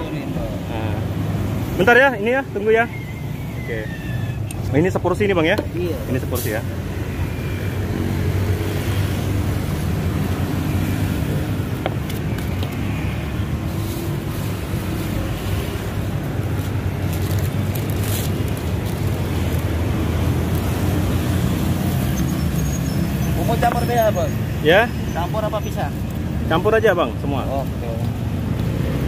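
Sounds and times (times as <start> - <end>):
city traffic rumble: 0.0 - 29.0.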